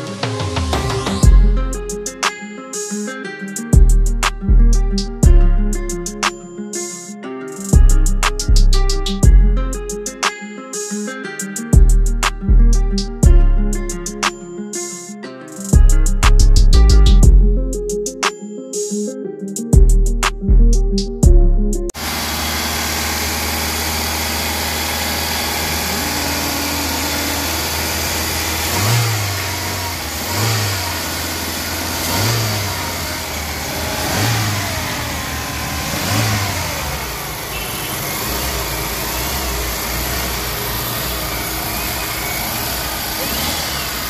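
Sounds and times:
car engine idling and revving: 0.8 - 1.7, 7.8 - 9.6, 21.9 - 44.0.

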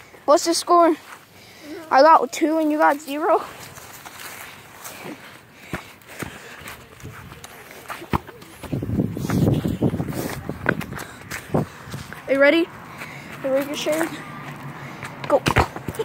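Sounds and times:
soccer ball being kicked: 7.8 - 9.0, 15.0 - 16.0.

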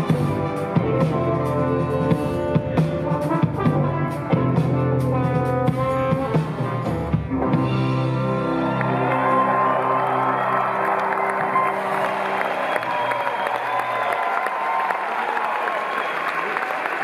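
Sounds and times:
audience applauding and cheering: 8.0 - 17.0.

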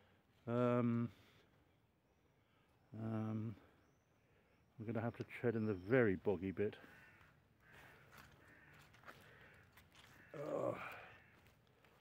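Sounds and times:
distant crow cawing: 6.8 - 12.0.

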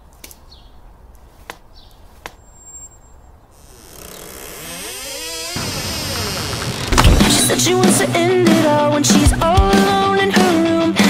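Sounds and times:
rock drums and distorted guitars: 6.4 - 11.0.

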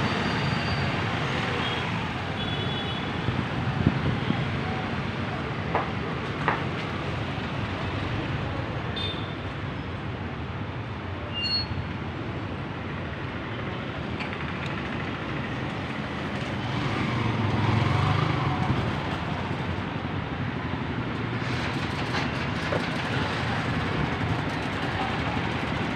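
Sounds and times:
road traffic: 0.0 - 25.9
heavy vehicle engine rumble: 12.9 - 25.9.

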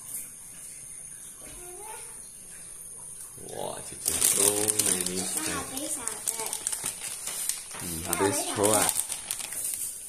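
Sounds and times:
plastic packets crinkling: 3.8 - 10.0.

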